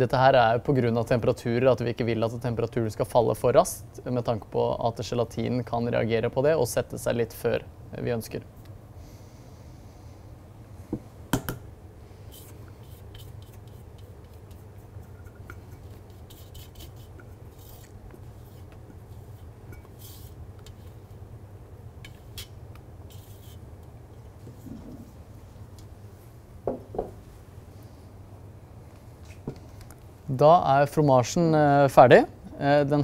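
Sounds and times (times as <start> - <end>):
spatula scraping metal bowl: 12.3 - 20.4, 22.1 - 23.6
spatula folding cream in bowl: 12.3 - 21.2, 22.0 - 25.1.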